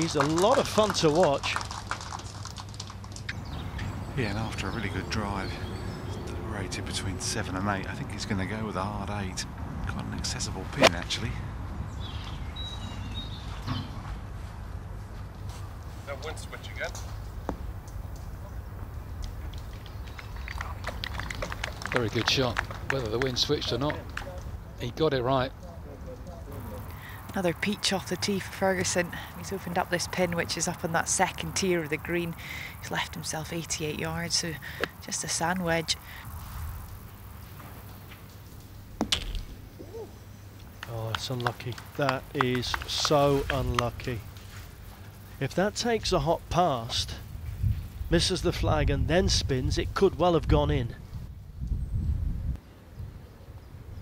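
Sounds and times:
wind rumble on microphone: 0:47.1 - 0:54.0.

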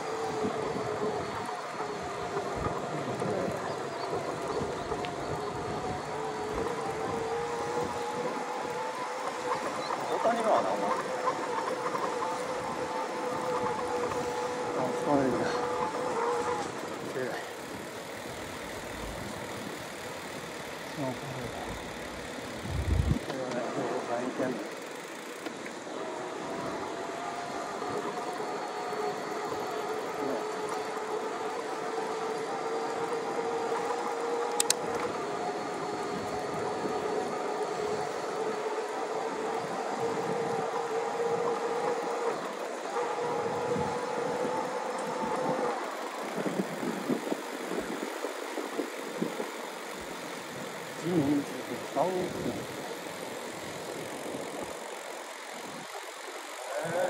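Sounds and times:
electric bicycle motor whining: 0:00.0 - 0:57.0
wind: 0:00.0 - 0:57.0
sharp click: 0:34.5 - 0:35.1.

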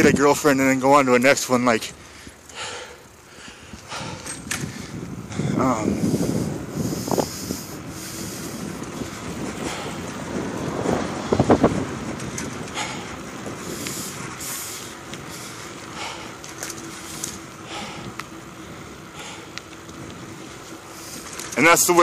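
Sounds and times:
bicycle rolling: 0:00.0 - 0:22.0
wind buffeting microphone: 0:00.0 - 0:22.0.

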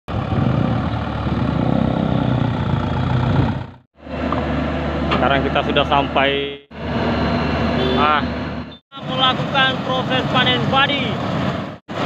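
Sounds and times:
diesel truck engine running: 0:00.1 - 0:12.0.

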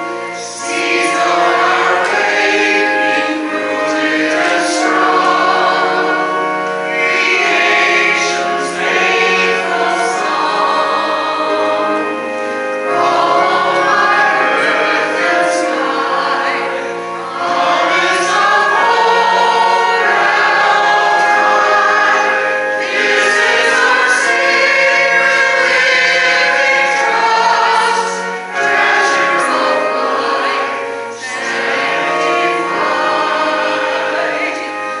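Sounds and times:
mixed choir singing: 0:00.0 - 0:35.0.

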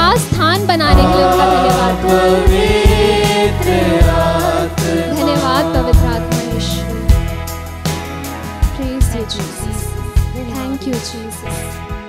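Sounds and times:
band accompaniment: 0:00.0 - 0:11.2
drum hits: 0:00.2 - 0:10.6
voices singing praise song: 0:00.8 - 0:07.4.

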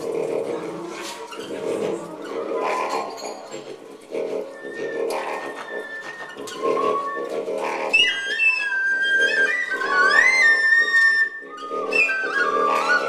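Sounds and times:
high sliding whistle tones: 0:04.6 - 0:07.3, 0:07.9 - 0:13.0.

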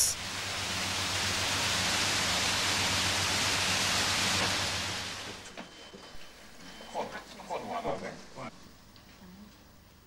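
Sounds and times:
falling water spray hiss: 0:00.0 - 0:05.4.

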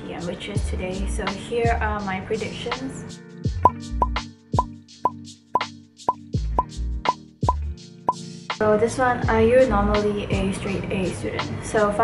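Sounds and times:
soft background music: 0:00.0 - 0:12.0
short popping sound effects: 0:03.6 - 0:06.7.

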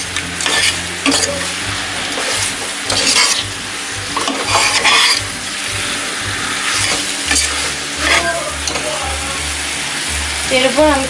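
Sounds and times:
meat sizzling in a pot: 0:00.0 - 0:11.0
metal spatula scraping a pot: 0:00.4 - 0:03.5, 0:04.2 - 0:05.4, 0:06.0 - 0:08.8.

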